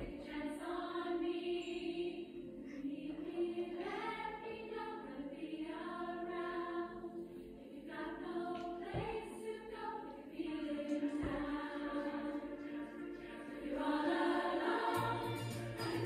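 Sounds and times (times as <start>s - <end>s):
choir singing through television speakers: 0.0s - 16.0s.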